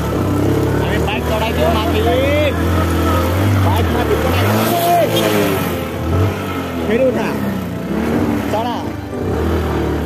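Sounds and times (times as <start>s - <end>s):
motorcycle engine running: 0.0s - 10.0s
voices calling: 0.8s - 9.2s.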